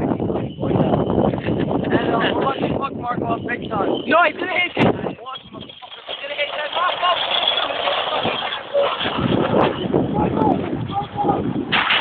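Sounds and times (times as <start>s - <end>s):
shopping cart rattling over asphalt: 3.9s - 10.0s.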